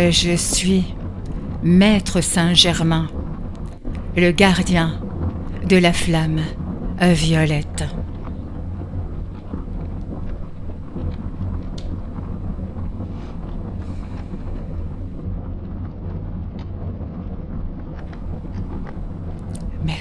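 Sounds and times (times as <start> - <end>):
low rumble: 0.0 - 20.0.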